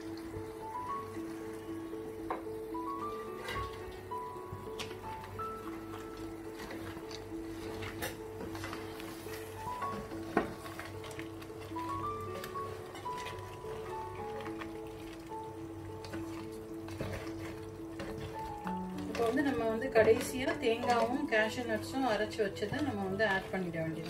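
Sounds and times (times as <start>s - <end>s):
instrumental background music: 0.0s - 24.0s
wooden spatula scraping pan: 16.0s - 24.0s.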